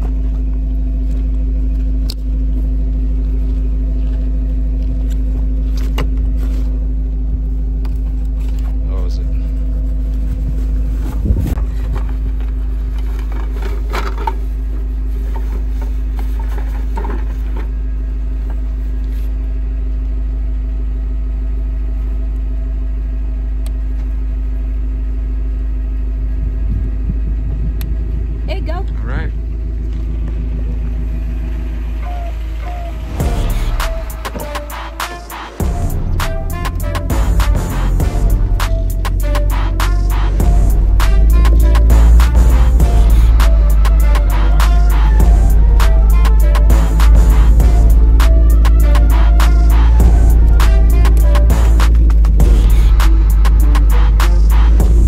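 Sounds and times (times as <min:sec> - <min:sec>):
handling noises: 0:00.0 - 0:19.4
truck engine idling: 0:00.0 - 0:55.0
indistinct voices: 0:32.0 - 0:55.0.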